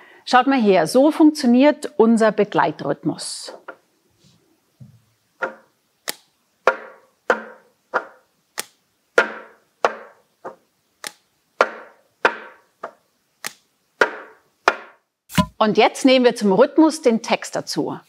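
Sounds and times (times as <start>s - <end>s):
plastic cups knocking on desk: 6.7s - 8.2s, 9.2s - 10.6s, 11.6s - 13.0s, 14.0s - 15.6s.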